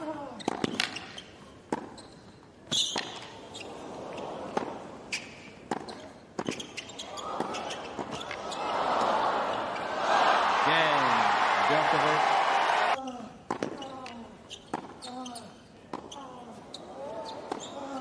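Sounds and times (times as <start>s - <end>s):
tennis ball bouncing: 1.7s - 2.0s, 5.6s - 8.4s
tennis racquet hitting ball: 5.6s - 6.8s
crowd cheering: 7.1s - 13.0s.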